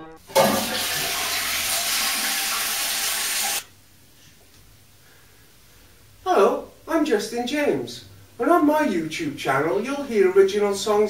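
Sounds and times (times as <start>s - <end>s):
toilet flushing: 0.2s - 3.7s.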